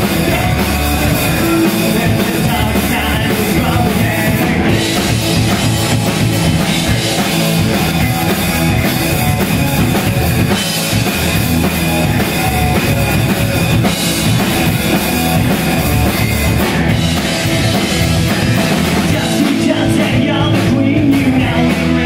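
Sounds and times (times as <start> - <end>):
live rock band playing: 0.0 - 22.0
pounding bass drum: 0.0 - 22.0.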